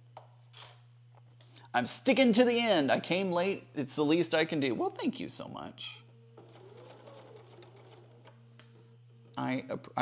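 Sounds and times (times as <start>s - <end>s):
steady low hum: 0.0s - 10.0s
sewing machine stitching: 6.4s - 8.4s.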